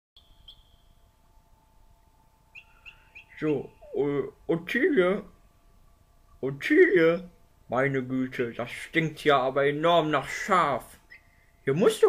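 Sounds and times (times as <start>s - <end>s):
faint high bird chirp: 0.2s - 1.3s, 2.0s - 5.5s, 10.9s - 12.0s
faint steady hum: 0.2s - 12.0s.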